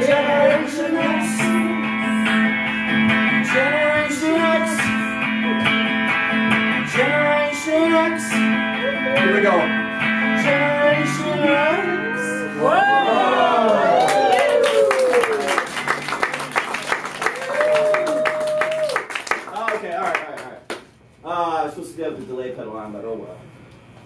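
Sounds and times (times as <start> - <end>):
electric guitar strumming chords: 0.0 - 12.7.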